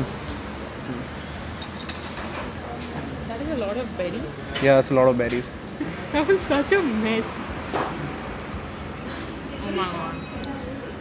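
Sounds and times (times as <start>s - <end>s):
murmur of voices: 2.5s - 11.0s.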